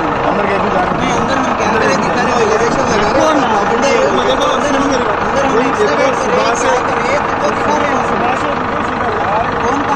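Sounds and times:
engine running: 0.0s - 9.9s
men talking: 0.0s - 9.9s.

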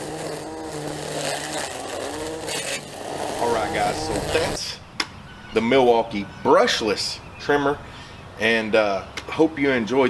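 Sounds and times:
string trimmer cutting grass: 0.0s - 4.7s.

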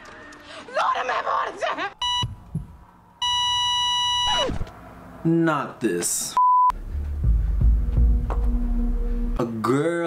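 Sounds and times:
censor bleeps: 2.0s - 2.4s, 3.2s - 4.5s, 6.4s - 6.7s.

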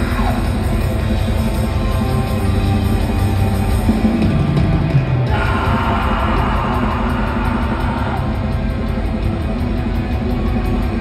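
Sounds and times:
live rock band: 0.0s - 11.0s.

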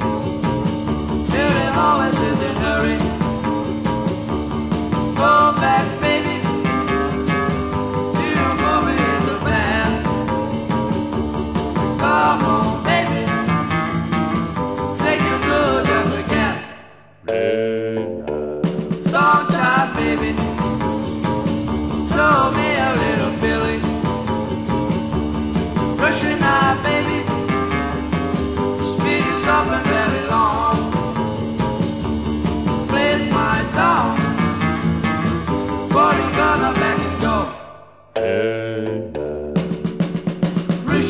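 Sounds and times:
rock and roll band playing: 0.0s - 16.8s, 17.4s - 41.0s.

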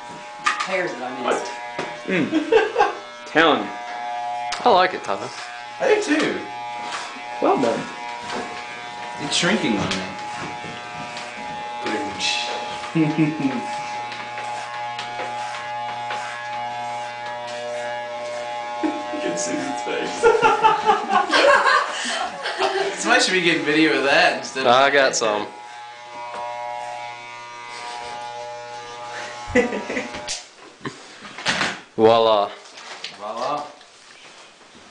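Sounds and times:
electric hair clippers buzzing: 0.0s - 30.6s.

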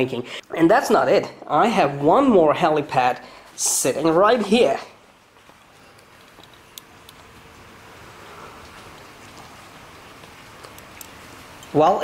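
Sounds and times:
steady rain hiss: 0.0s - 12.0s
light ticks of raindrops: 5.3s - 11.8s.

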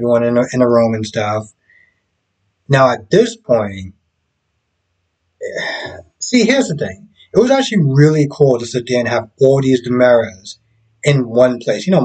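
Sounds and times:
man speaking: 0.0s - 1.5s, 2.7s - 3.9s, 5.4s - 12.0s
man's throaty vocal sound: 5.4s - 8.1s.

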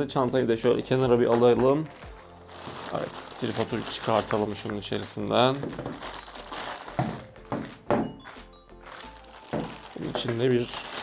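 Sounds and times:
soft background music: 0.0s - 11.0s
plastic bag crinkling: 0.6s - 11.0s.

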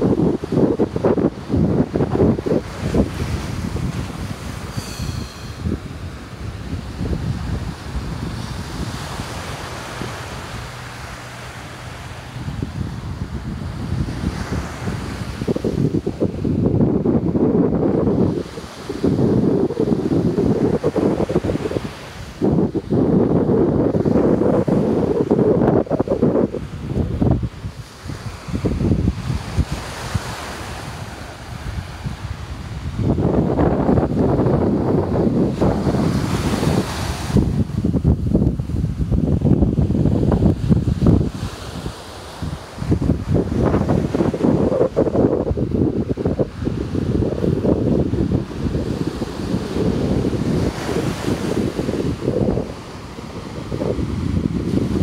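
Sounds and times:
ocean surf breaking: 0.0s - 55.0s
wind buffeting microphone: 0.0s - 55.0s.

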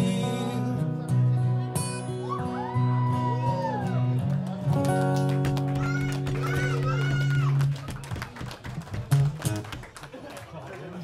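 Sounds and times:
acoustic guitars strumming chords: 0.0s - 7.8s.

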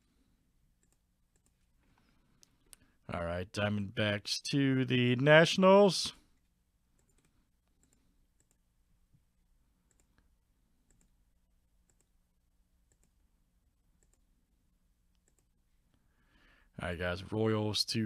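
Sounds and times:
computer mouse clicks: 0.8s - 1.6s, 6.4s - 8.6s, 9.8s - 11.2s, 11.8s - 12.1s, 12.9s - 13.2s, 14.0s - 14.3s, 15.1s - 15.5s.

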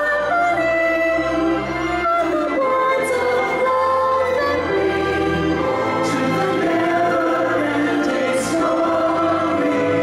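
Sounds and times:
musical backing: 0.0s - 10.0s
choir singing held chords: 4.5s - 10.0s.

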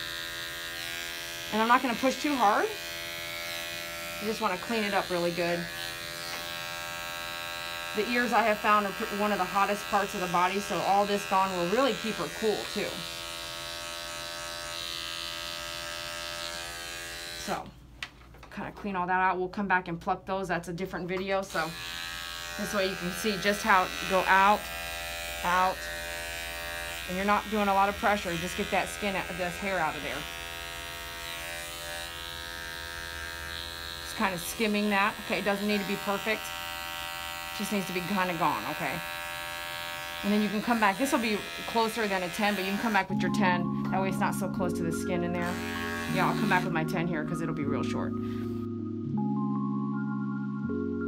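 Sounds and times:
electric dog clipper humming: 0.0s - 17.7s, 21.2s - 48.7s.

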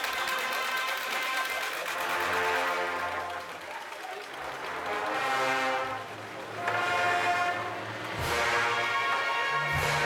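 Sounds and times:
brass band playing funeral march: 0.0s - 3.6s, 4.4s - 10.0s
crowd noise: 0.0s - 10.0s.

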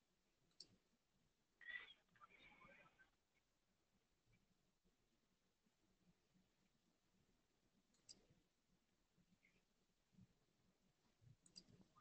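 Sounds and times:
faint high-pitched squeak: 1.6s - 3.0s.

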